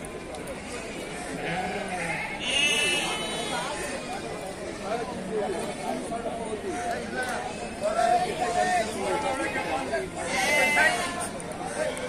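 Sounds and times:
people talking: 0.0s - 12.0s
sheep bleating: 1.4s - 3.7s.

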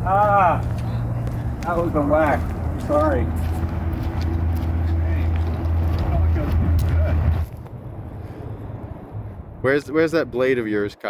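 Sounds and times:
low engine drone: 0.0s - 10.9s
outdoor background: 0.0s - 11.0s.

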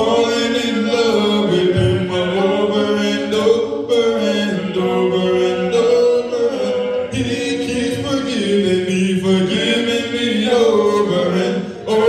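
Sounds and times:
unaccompanied hymn singing: 0.0s - 12.0s.

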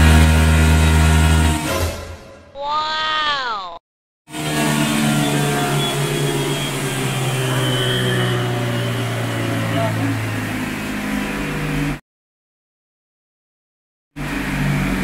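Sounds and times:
scooter engine at high revs: 0.0s - 1.9s, 4.3s - 12.0s, 14.2s - 15.0s.

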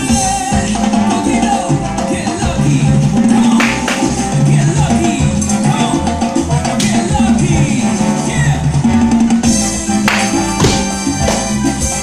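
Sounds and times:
salsa music: 0.0s - 12.0s.

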